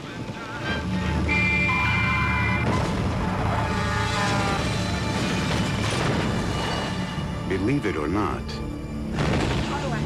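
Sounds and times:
heavy truck rumble: 0.0s - 7.5s.

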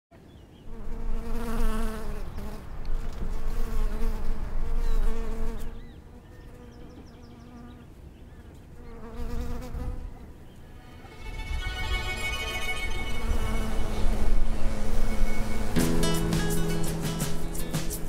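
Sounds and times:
bee buzzing in flight: 0.7s - 7.8s, 8.8s - 15.8s.

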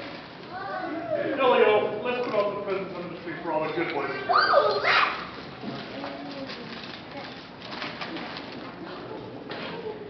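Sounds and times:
murmur of children's voices: 0.0s - 10.0s.

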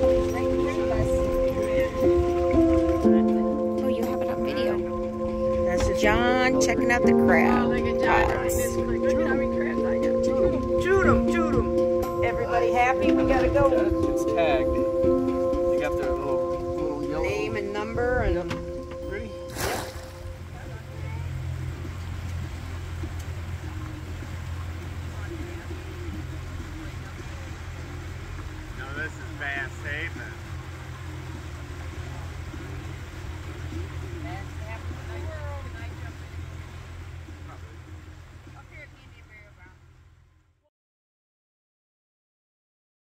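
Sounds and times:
boat motor humming: 0.0s - 40.7s.

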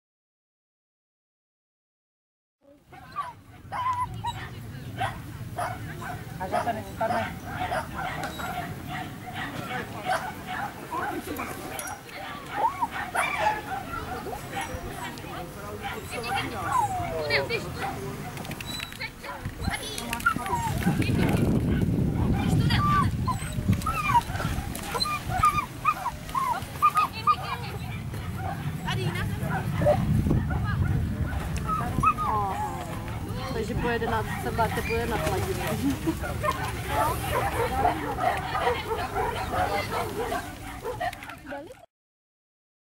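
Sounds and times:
people chattering: 2.6s - 41.8s
dog barking and yipping: 3.0s - 41.8s
small dog yipping and whining: 3.2s - 4.4s, 22.4s - 27.6s.

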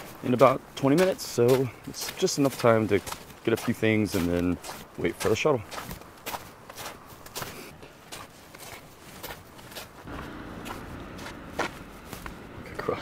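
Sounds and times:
footsteps on snow: 0.0s - 13.0s
vehicle engine hum: 9.8s - 13.0s.

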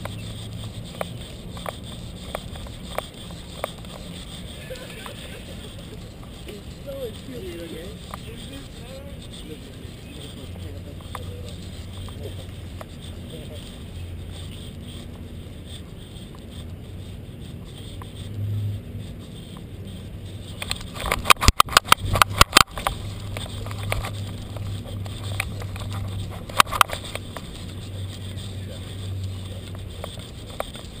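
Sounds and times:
camera handling rumble: 0.0s - 31.0s.

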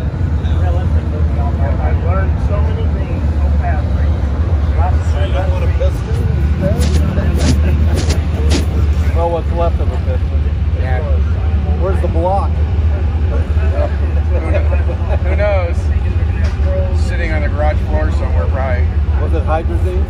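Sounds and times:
muffled voices talking: 0.0s - 20.0s
steady low hum: 3.7s - 10.6s.

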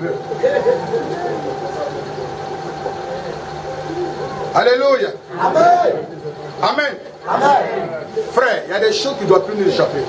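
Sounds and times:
electrical hum with high tone: 0.0s - 10.0s
faint murmuring voices: 0.0s - 10.0s.

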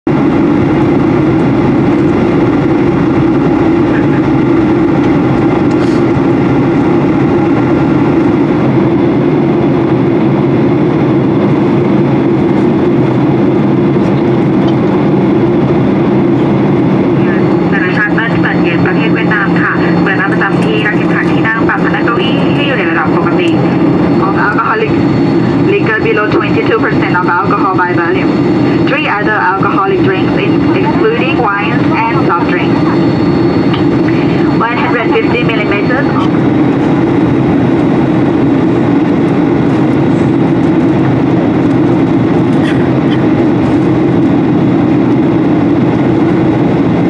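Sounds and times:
airplane cabin engine drone: 0.1s - 47.0s
cabin announcement over speaker: 2.6s - 5.2s, 16.3s - 37.2s.

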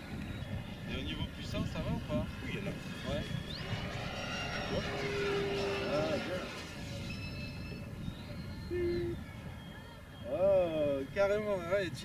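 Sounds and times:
low rumble: 0.0s - 9.3s.

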